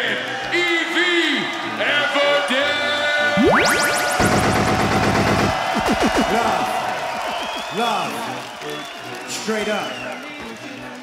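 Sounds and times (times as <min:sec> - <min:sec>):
record scratching on turntables: 0:03.4 - 0:07.7.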